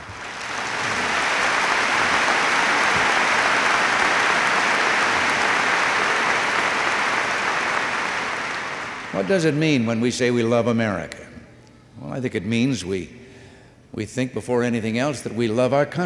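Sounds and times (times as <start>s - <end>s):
large audience applauding: 0.0s - 9.6s.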